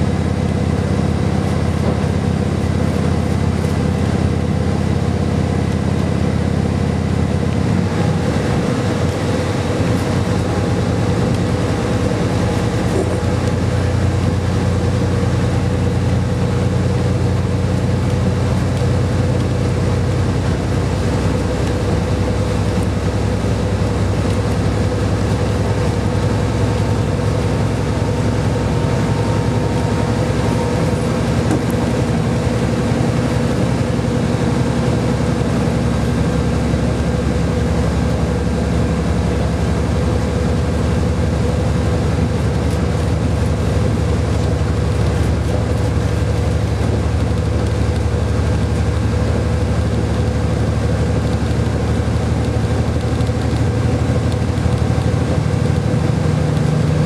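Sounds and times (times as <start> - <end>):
diesel engine running: 0.0 - 57.0
wheels rumbling on rail: 0.0 - 57.0.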